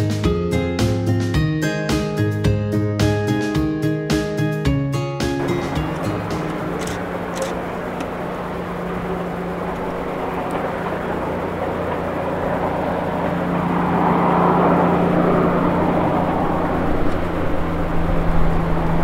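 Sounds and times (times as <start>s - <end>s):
engine hum with rushing noise: 0.0s - 19.0s.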